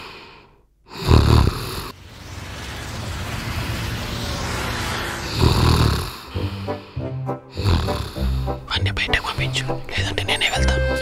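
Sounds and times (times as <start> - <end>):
man snoring: 0.9 - 1.9, 7.6 - 8.5.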